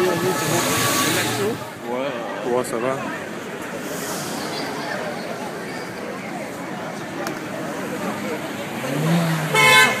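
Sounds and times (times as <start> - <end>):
street traffic: 0.0 - 10.0
voices: 0.0 - 10.0
car horn blast: 9.5 - 10.0.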